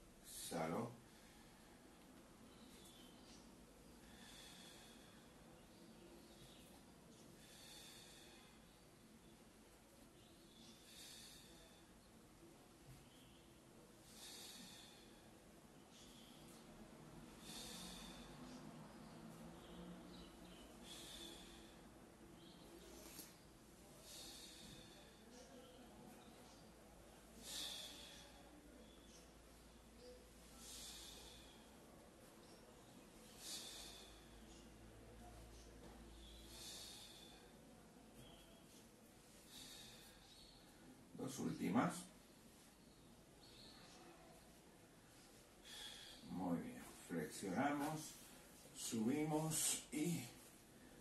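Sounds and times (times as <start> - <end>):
low room hiss: 0.0 - 51.0
person breathing: 1.0 - 41.1, 42.0 - 51.0.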